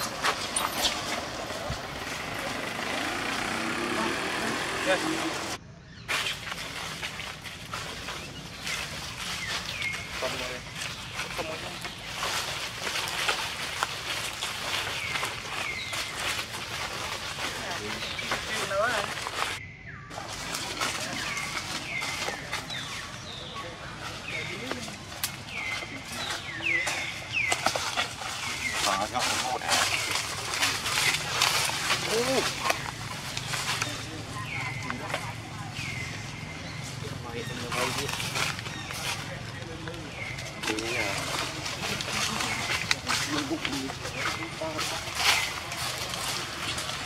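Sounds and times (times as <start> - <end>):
monkeys chirping and squeaking: 0.0 - 47.0
rustling: 0.0 - 47.0.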